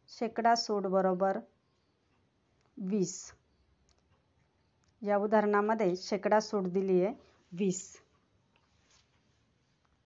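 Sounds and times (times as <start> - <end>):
woman speaking: 0.1 - 1.5, 2.8 - 3.4, 5.0 - 8.1
faint clicks: 3.8 - 5.0.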